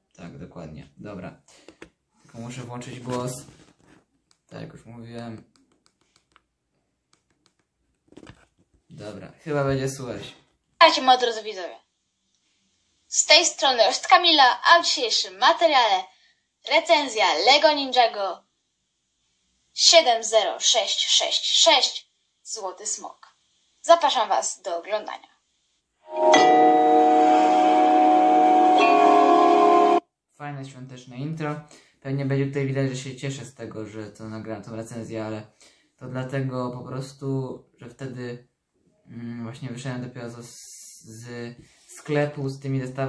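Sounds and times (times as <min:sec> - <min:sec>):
intro jingle held chord: 0:26.1 - 0:30.0.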